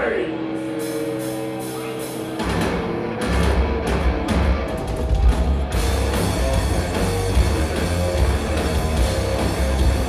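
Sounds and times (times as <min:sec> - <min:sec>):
distorted guitars: 0:00.0 - 0:10.0
heavy metal band playing live: 0:00.0 - 0:10.0
pounding low drums: 0:01.4 - 0:10.0.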